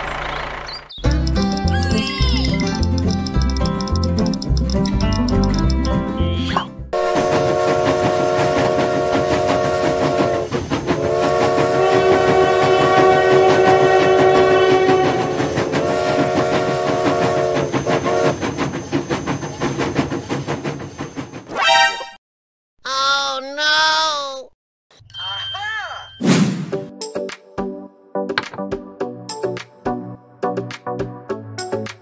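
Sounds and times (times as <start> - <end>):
train chugging clatter: 0.0 - 5.8, 7.0 - 21.5
music: 1.0 - 7.0, 26.7 - 32.0
train whistle blasts: 7.0 - 18.4.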